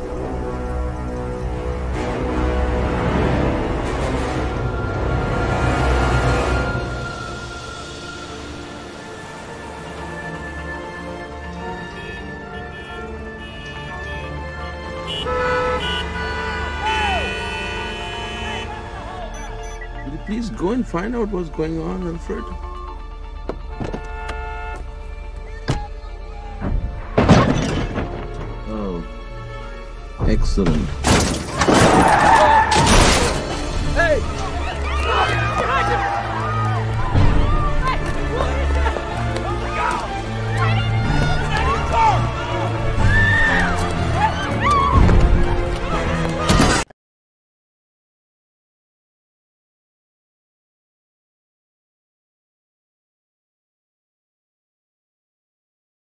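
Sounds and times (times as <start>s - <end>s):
film score: 0.0s - 46.9s
car horn honking: 11.6s - 20.1s, 23.6s - 25.1s
people shouting and screaming: 31.7s - 33.0s, 34.0s - 46.8s.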